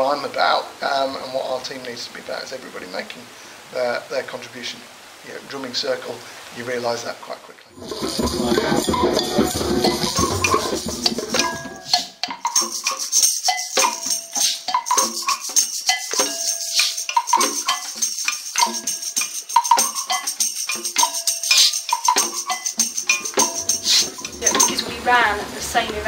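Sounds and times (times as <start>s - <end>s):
hand drum rhythm: 7.8s - 26.0s
shaker rattle: 7.8s - 26.0s.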